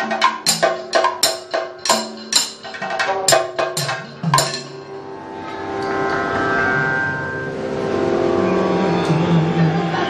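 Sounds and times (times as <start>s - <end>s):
drone of held tones: 4.9s - 10.0s
man singing low held note: 7.9s - 10.0s.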